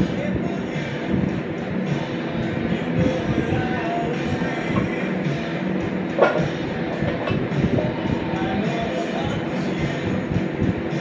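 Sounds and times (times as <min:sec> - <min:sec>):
music playing: 0:00.0 - 0:11.0
barbell plates rolling on floor: 0:05.9 - 0:08.0.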